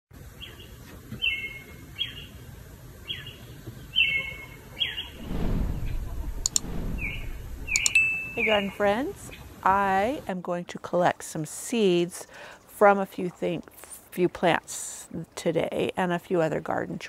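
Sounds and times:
low rumble: 0:05.2 - 0:07.9
bird whistling calls: 0:07.0 - 0:08.6.

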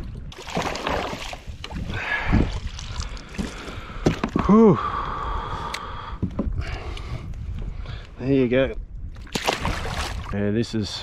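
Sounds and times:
water splashing and dripping: 0:00.3 - 0:04.2, 0:09.2 - 0:10.4.

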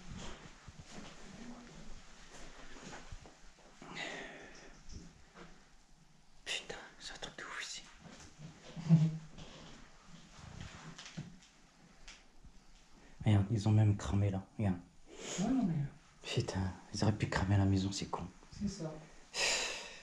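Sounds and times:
whispering and low voices: 0:01.2 - 0:02.0, 0:06.4 - 0:08.0.

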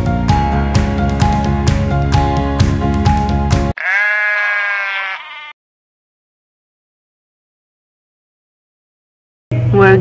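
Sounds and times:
background music: 0:00.0 - 0:03.8
farm animal bleating: 0:03.8 - 0:05.6.

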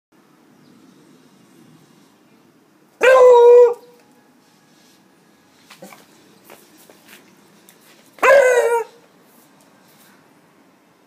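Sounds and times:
dog barking: 0:03.0 - 0:03.9, 0:08.2 - 0:09.0.

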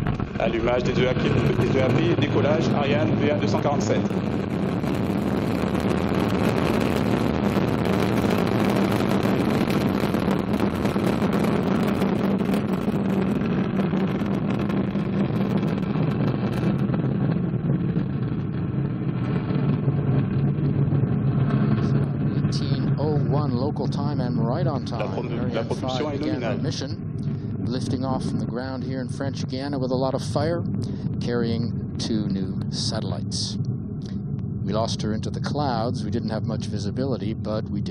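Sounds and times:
rocket engines rumbling and crackling: 0:00.0 - 0:37.9.

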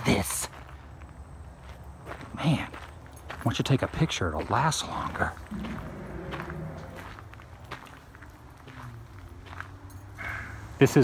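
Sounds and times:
footsteps on gravel: 0:00.0 - 0:10.1
low wind rumble: 0:04.9 - 0:07.9.

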